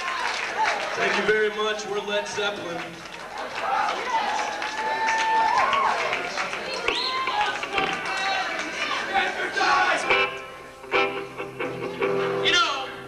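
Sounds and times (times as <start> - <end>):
concert crowd cheering and shouting: 3.2 - 10.5.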